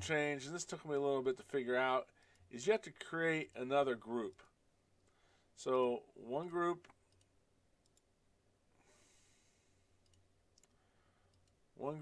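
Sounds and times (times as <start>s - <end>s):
soft breath: 5.0s - 5.6s, 8.7s - 10.0s, 10.7s - 11.4s
computer mouse clicks: 6.8s - 8.1s, 10.0s - 11.6s.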